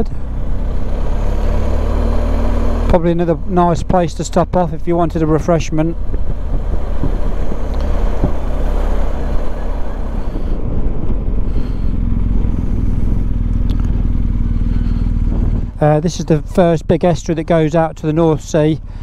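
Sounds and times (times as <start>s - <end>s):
motorcycle engine running: 0.0s - 19.0s
wind and road noise: 0.0s - 19.0s.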